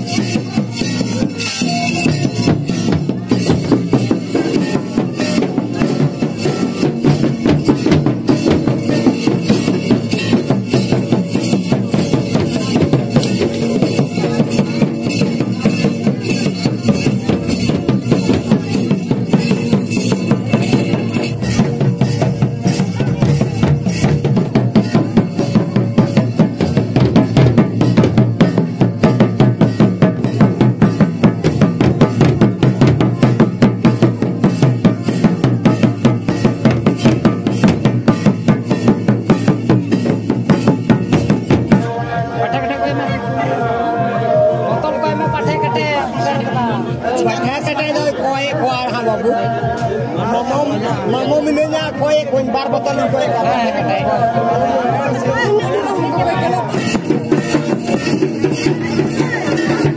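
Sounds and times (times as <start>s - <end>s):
hand-beaten barrel drum: 0.0s - 59.9s.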